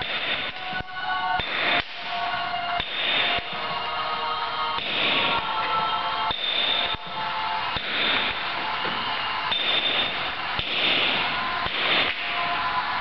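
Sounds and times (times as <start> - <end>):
background music: 0.0 - 13.0
hammer striking steel chisel: 6.3 - 7.0, 9.5 - 11.0.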